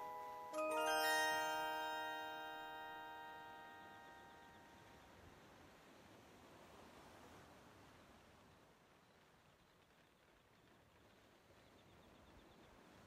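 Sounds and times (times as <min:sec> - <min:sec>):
music box chord ringing: 0:00.0 - 0:05.1.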